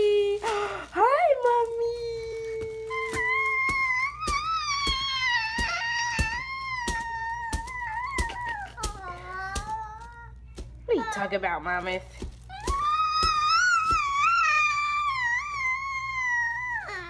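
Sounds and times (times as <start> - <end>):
paper crackling: 0.0 - 16.5.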